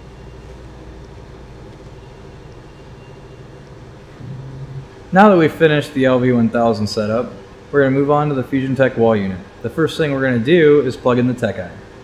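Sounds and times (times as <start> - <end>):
low background hum: 0.0 - 12.0
brief low rising tone: 4.1 - 5.0.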